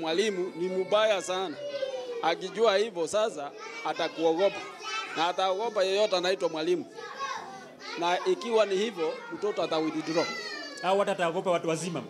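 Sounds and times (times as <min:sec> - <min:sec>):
man talking: 0:00.0 - 0:01.6, 0:02.2 - 0:06.9, 0:08.0 - 0:12.0.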